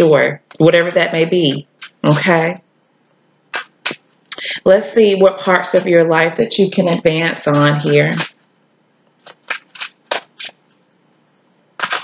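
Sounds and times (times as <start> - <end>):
cards being shuffled by hand: 9.2 - 10.8, 11.8 - 12.0.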